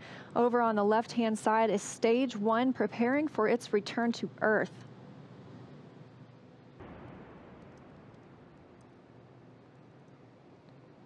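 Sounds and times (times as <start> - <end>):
faint steady hiss: 3.4 - 11.0.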